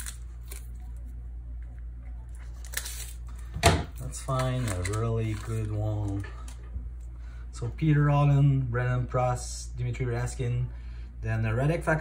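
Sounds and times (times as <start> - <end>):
foil card pack crinkling: 0.0 - 1.0, 2.4 - 6.3
steady low hum: 0.0 - 12.0.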